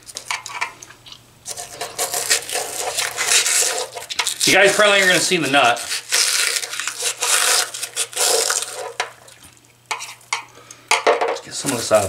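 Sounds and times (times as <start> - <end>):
screwdriver scraping: 1.5 - 9.0.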